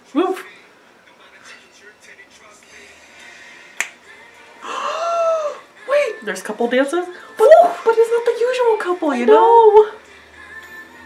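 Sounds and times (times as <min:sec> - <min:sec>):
woman's drawn-out ooh: 0:04.6 - 0:05.6.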